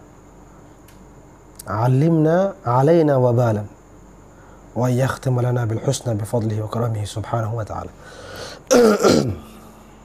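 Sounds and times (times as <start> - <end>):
man speaking: 4.8 - 8.0
man coughing: 8.7 - 9.6.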